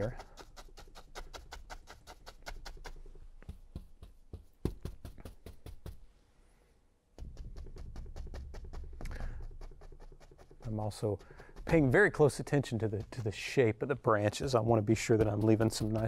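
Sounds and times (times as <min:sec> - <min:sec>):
paint brush tapping on canvas: 0:00.8 - 0:06.1, 0:07.2 - 0:16.0.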